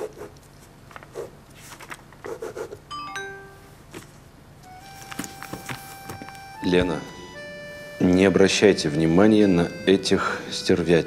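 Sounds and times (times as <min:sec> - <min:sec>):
electronic notification chime: 0:02.9 - 0:03.7
soft background music: 0:04.7 - 0:11.0.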